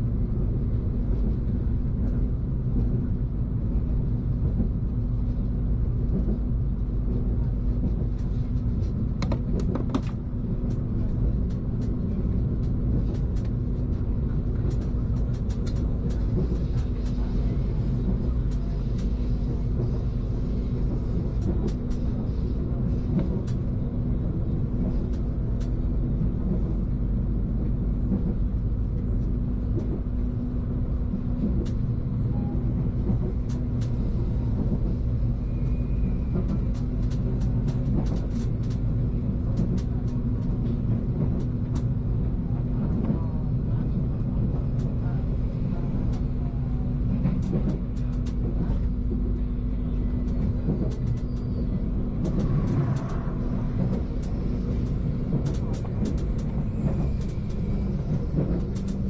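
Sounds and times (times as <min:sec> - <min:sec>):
train rumbling inside carriage: 0:00.0 - 0:59.0
light clicks and rattles: 0:07.1 - 0:19.9, 0:21.3 - 0:22.2, 0:36.3 - 0:41.9, 0:47.1 - 0:49.4, 0:50.2 - 0:51.5, 0:52.2 - 0:59.0.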